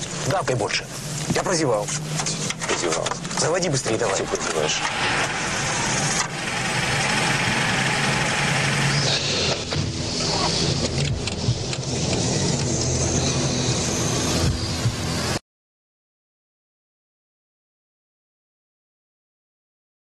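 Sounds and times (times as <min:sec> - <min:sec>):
car engine starting and running: 0:00.0 - 0:15.4
road and wind noise: 0:00.0 - 0:15.4.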